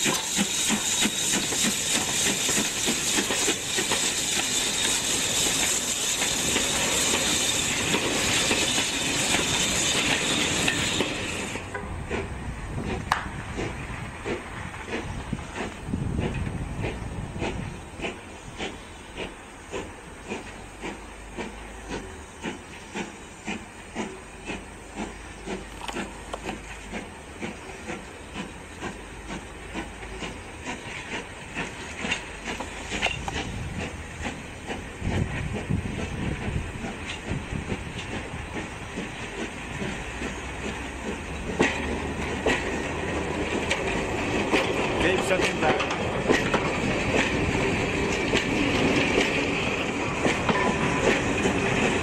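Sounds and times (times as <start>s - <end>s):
hiss of steam: 0.0s - 52.0s
steam locomotive exhaust beats: 0.0s - 52.0s
train wheels rolling: 0.0s - 52.0s.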